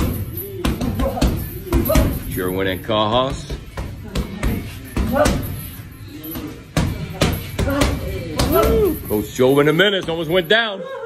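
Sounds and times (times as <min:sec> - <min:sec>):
boxing gloves punching heavy bag: 0:00.0 - 0:10.5.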